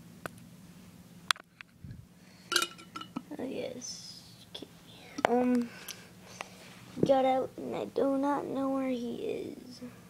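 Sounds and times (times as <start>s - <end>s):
glass jars knocking together: 2.5s - 3.2s.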